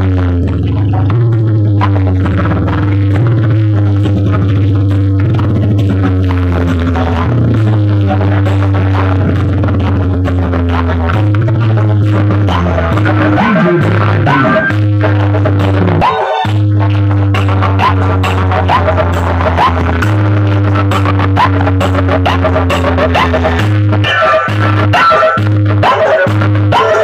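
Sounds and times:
loud dance music with heavy bass: 0.0s - 27.0s.

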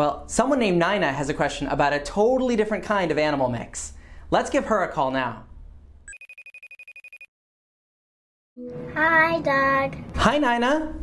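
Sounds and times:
electronic telephone ringtone trill: 6.1s - 7.3s.

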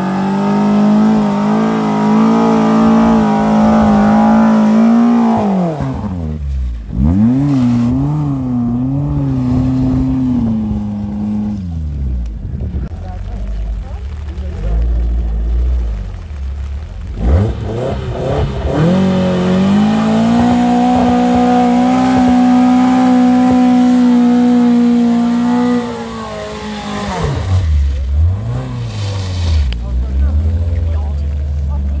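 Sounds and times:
car engine revving: 0.0s - 32.0s
low engine rumble: 0.0s - 32.0s.

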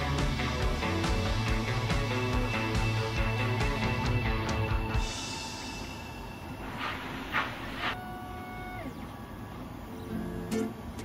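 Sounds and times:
stepper motors whooshing sweeps: 6.5s - 8.0s.

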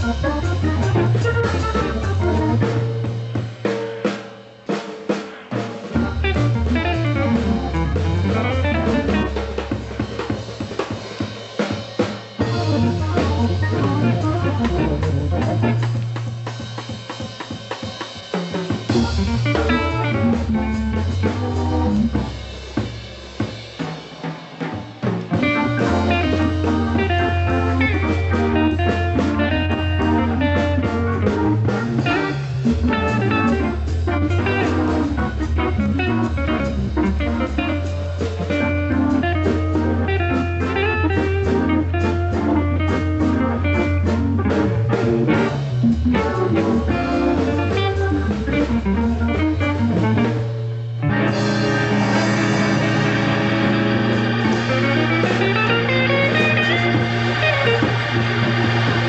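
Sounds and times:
organ playing bass line: 0.0s - 4.2s, 5.5s - 59.0s
drum kit: 0.0s - 59.0s
electric guitar: 0.0s - 59.0s.

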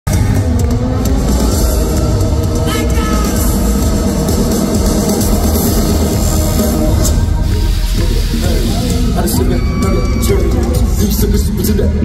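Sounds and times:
live electronic pop music: 0.1s - 12.0s.

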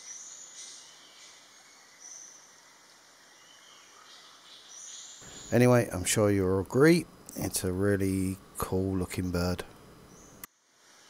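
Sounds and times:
faint forest hiss: 0.0s - 11.0s.

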